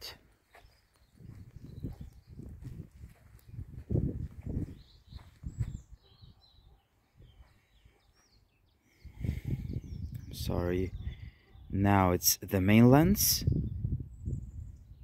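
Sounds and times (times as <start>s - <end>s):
footsteps walking: 0.3s - 5.8s
faint bird chirps: 0.5s - 3.7s, 4.6s - 11.8s.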